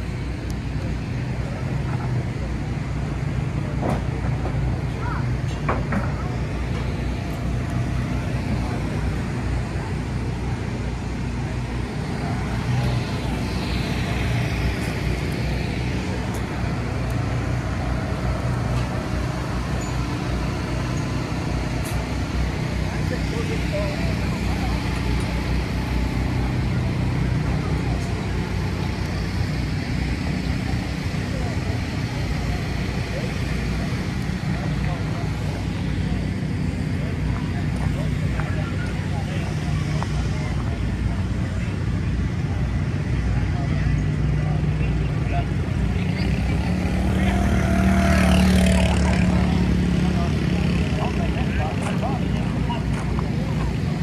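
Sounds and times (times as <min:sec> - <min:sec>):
engine passing by: 0:00.0 - 0:54.0
low engine hum: 0:00.0 - 0:54.0
voices talking: 0:00.0 - 0:54.0.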